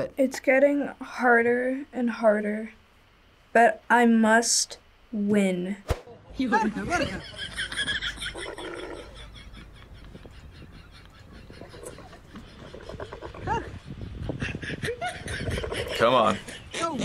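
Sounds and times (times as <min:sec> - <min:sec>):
camel calling rasping: 0:11.5 - 0:13.8.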